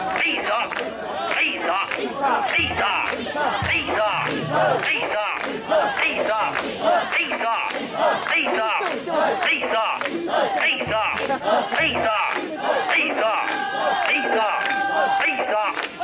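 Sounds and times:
crowd chanting in unison: 0.0 - 16.0.

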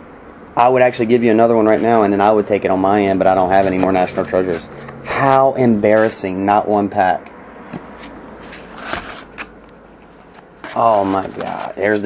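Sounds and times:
cardboard box handling clicks and knocks: 7.7 - 9.5.

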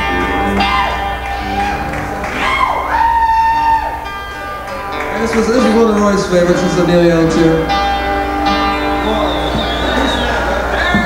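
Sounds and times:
band backing: 0.0 - 11.0
lead instrument bending held notes: 0.0 - 11.0.

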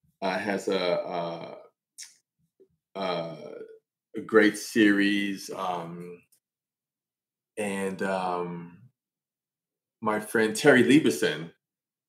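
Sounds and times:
man speaking hesitantly: 0.2 - 1.7, 3.0 - 6.2, 7.6 - 8.8.

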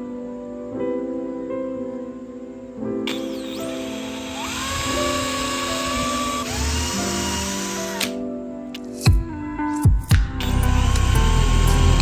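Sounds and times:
cordless drill motor whining: 3.1 - 8.2, 10.7 - 12.0.

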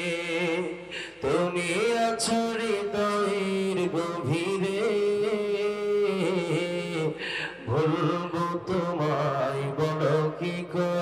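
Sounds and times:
person chanting: 0.0 - 11.0
short breath: 0.8 - 1.2, 7.2 - 7.7.

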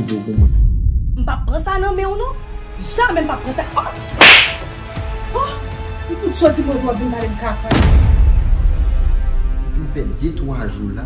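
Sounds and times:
background music: 1.6 - 11.0
hand slapping a face: 4.2 - 4.7.

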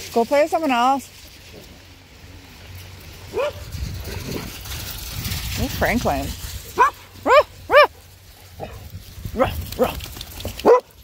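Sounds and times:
dogs playing: 0.0 - 11.0
dog barking: 3.3 - 3.6, 6.8 - 8.0, 10.6 - 11.0.

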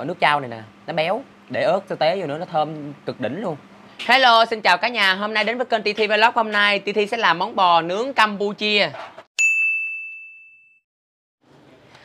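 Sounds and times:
bell-like ding: 9.4 - 10.8.

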